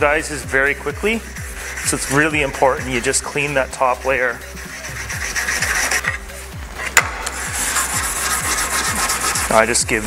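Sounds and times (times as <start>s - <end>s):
background music with beat: 0.0s - 10.0s
brush scrubbing metal plate: 0.2s - 6.2s, 6.8s - 10.0s.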